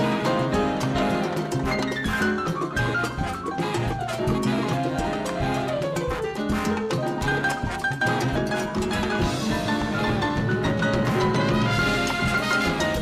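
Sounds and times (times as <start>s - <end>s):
congas: 0.0s - 13.0s
horn sections: 0.0s - 13.0s
latin jazz big band: 0.0s - 13.0s.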